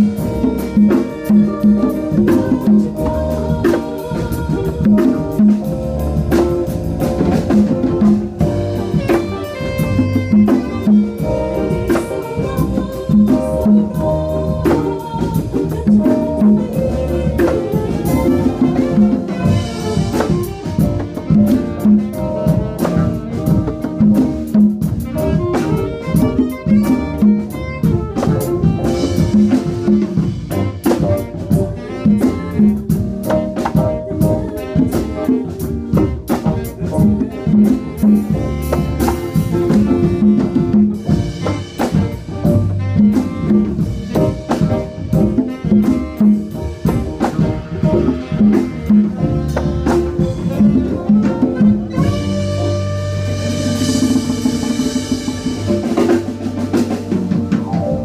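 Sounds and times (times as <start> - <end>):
live band playing: 0.0 - 58.0
rapid drum strikes: 0.0 - 58.0.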